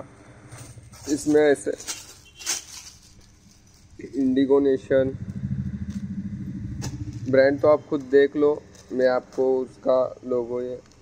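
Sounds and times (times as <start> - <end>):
vehicle engine running: 0.0 - 9.4.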